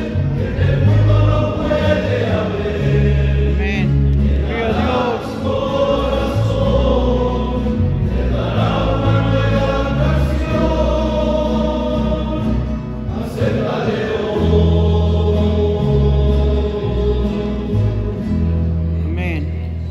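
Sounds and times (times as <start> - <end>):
men's choir singing a hymn: 0.0 - 18.9.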